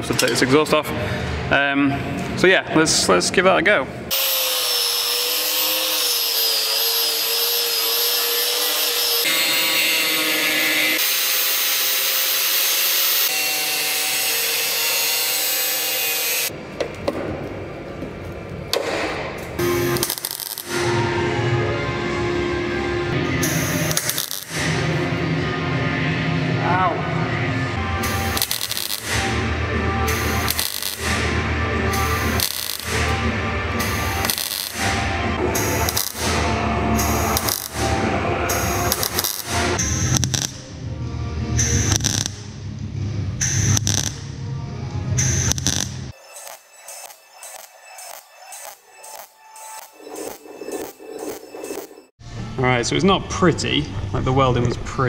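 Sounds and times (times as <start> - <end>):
welder crackling: 4.1 - 9.4, 18.8 - 20.9, 23.3 - 25.1, 28.0 - 40.7, 41.6 - 42.5, 43.4 - 44.3, 45.2 - 52.1
power tool cutting steel: 4.1 - 16.5, 19.6 - 21.1, 23.1 - 24.9, 27.9 - 40.5, 45.2 - 52.1.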